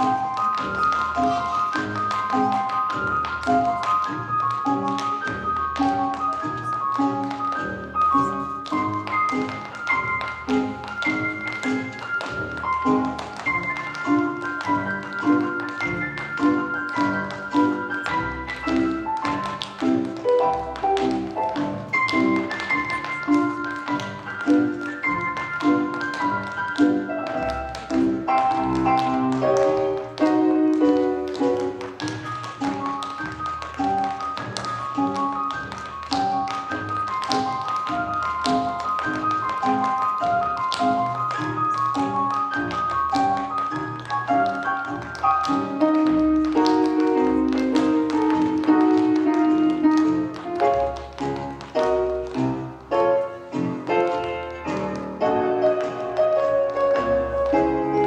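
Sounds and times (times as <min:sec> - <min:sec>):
recorded music: 0:00.0 - 0:58.0
tap shoes clicking on stage: 0:00.0 - 0:58.0.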